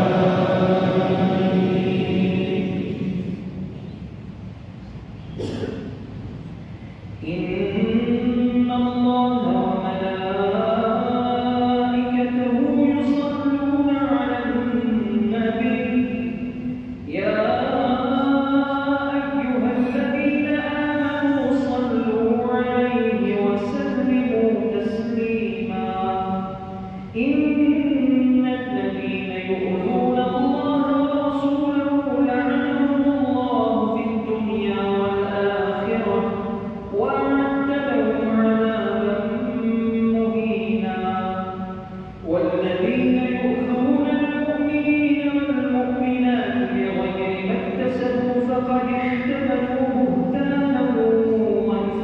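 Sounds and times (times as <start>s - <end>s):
man chanting recitation: 0.0s - 3.4s.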